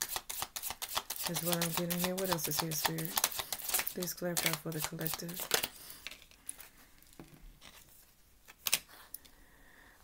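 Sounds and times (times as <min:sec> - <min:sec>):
cards shuffling: 0:00.0 - 0:06.7.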